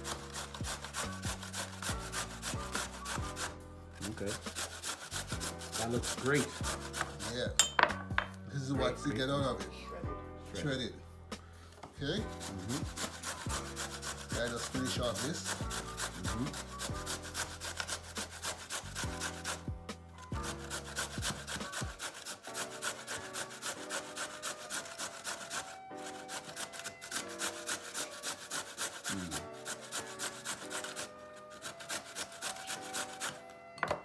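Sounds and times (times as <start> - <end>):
carrot scraping on a grater: 0.0 - 7.5, 12.2 - 19.7, 20.3 - 33.5
background music: 0.0 - 34.0.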